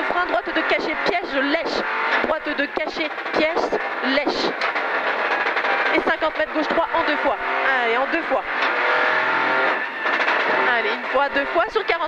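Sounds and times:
car engine running hard: 0.0s - 12.0s.

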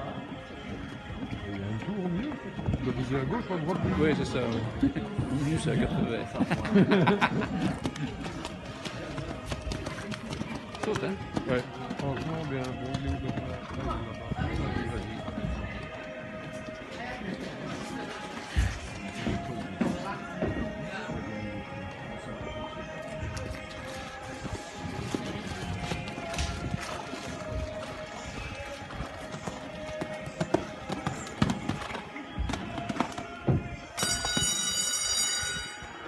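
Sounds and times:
music playing: 0.0s - 36.0s
horse hoofbeats on sand: 7.6s - 16.5s, 22.5s - 34.6s.

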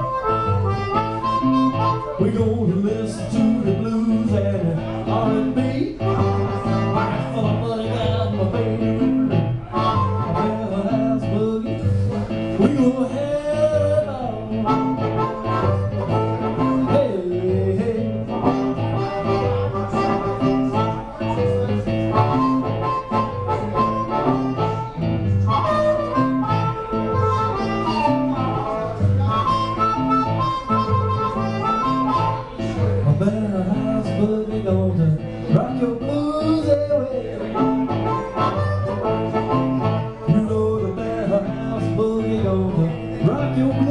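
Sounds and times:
blues harmonica solo: 0.0s - 33.2s, 34.9s - 43.9s
guitar boogie rhythm: 0.0s - 43.9s.

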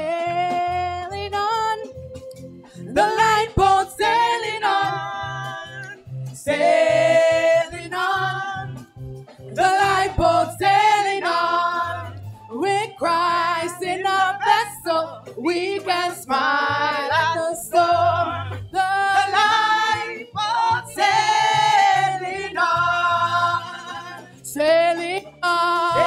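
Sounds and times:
women singing in harmony: 0.0s - 1.9s, 2.8s - 8.9s, 9.5s - 26.0s.

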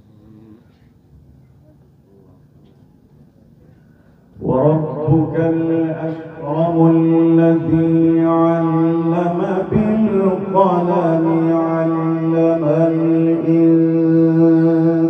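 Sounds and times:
man reciting melodically: 4.4s - 15.0s.

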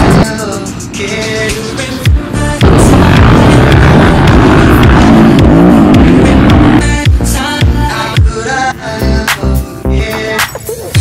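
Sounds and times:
music: 0.0s - 11.0s
dirt bike engine revving: 2.6s - 6.8s.

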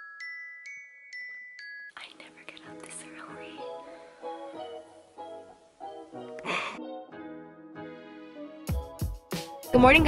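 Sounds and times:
soft background music: 1.2s - 10.0s
woman whispering: 1.9s - 3.9s.

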